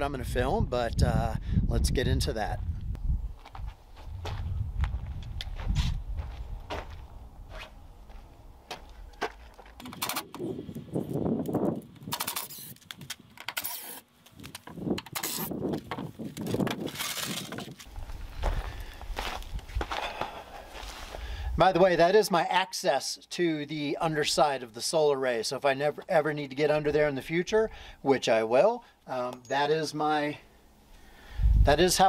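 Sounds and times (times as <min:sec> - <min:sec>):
wind rumble on microphone: 0:00.0 - 0:08.1, 0:10.2 - 0:12.2, 0:14.7 - 0:20.0, 0:31.3 - 0:32.0
footsteps on gravel: 0:03.4 - 0:09.8, 0:15.6 - 0:21.4.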